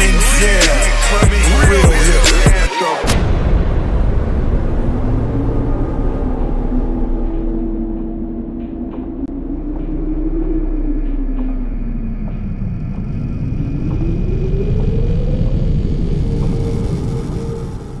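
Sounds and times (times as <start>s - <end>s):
car engine rumbling: 3.2s - 18.0s.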